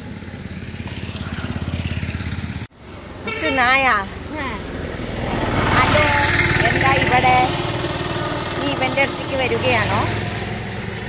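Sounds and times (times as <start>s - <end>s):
small engine chugging: 0.0s - 2.7s, 5.7s - 11.0s.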